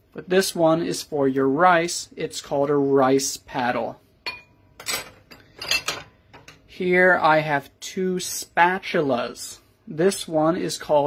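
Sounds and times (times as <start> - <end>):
utensils clinking on wire dish rack: 4.2 - 6.6.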